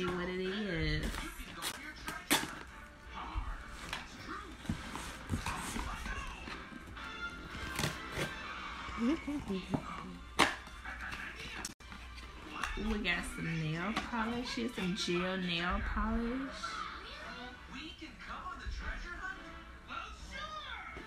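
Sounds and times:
background music: 0:00.0 - 0:20.8
cardboard box being opened: 0:03.8 - 0:06.6.

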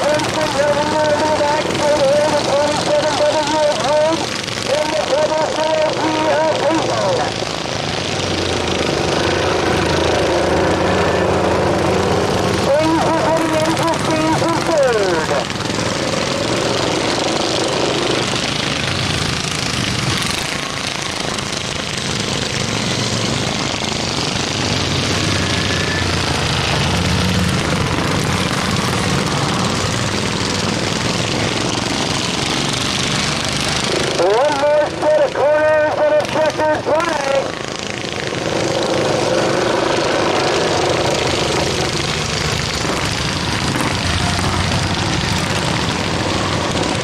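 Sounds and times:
lawn mower engines racing: 0:00.0 - 0:47.0.

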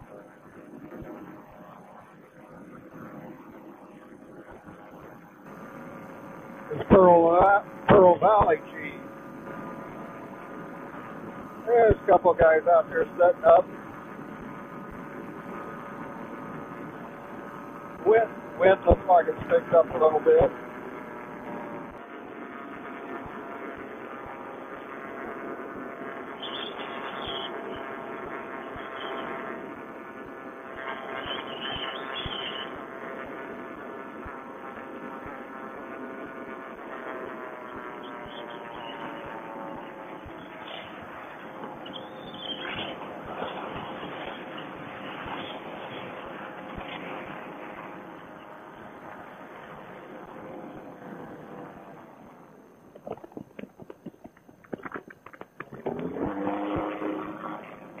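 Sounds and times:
paramotor engine and propeller: 0:00.0 - 0:58.0.

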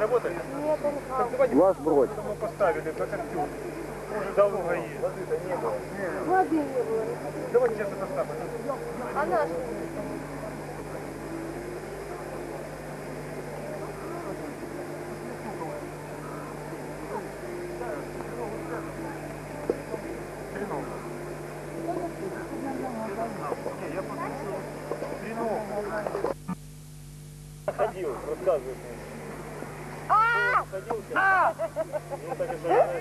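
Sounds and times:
faint background voices: 0:00.0 - 0:26.4
camcorder hum and hiss: 0:00.0 - 0:33.0.

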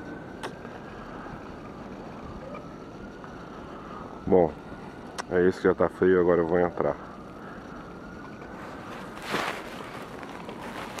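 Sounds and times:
faint rising whine: 0:00.0 - 0:11.0
steady street hiss: 0:00.0 - 0:11.0.

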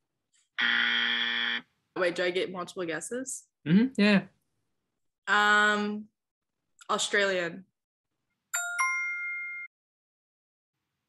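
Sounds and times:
wrong-answer buzzer: 0:00.6 - 0:01.7.

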